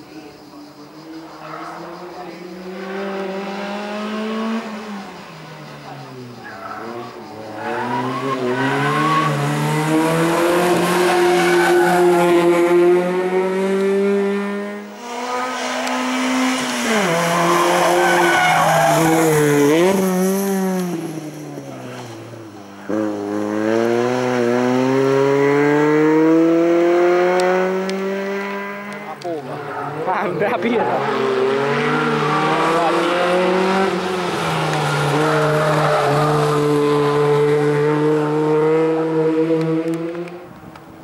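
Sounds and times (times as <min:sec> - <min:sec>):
car engine revving hard: 0:02.6 - 0:05.1, 0:07.4 - 0:21.4, 0:22.8 - 0:29.2, 0:29.8 - 0:40.4
tyres squealing: 0:15.2 - 0:19.4.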